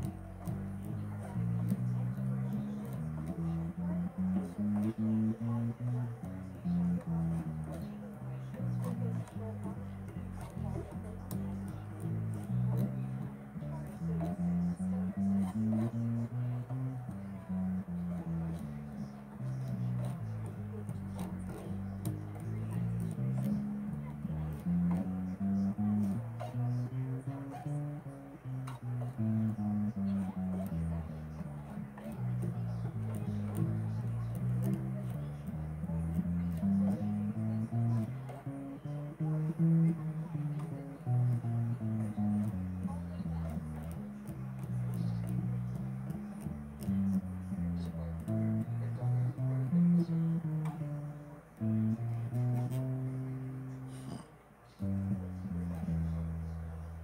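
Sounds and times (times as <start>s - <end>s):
plucked bass guitar: 0.0s - 57.0s.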